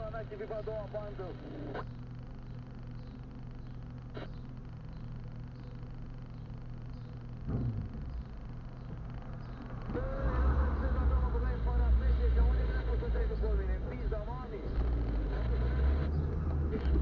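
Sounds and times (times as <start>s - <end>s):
car engine idling: 5.6s - 17.0s
brief thump: 7.4s - 8.3s
car pulling away rumble: 9.8s - 12.6s.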